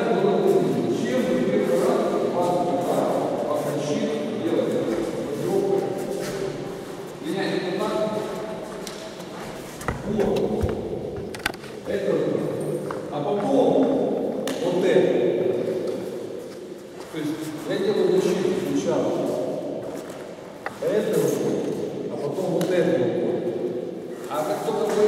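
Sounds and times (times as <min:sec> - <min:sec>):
people talking in echoing hall: 0:00.0 - 0:25.0.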